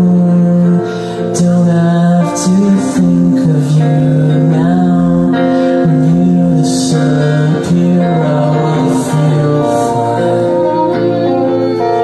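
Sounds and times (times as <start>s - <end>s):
acoustic guitar: 0.0s - 12.0s
violin sliding notes: 7.2s - 12.0s.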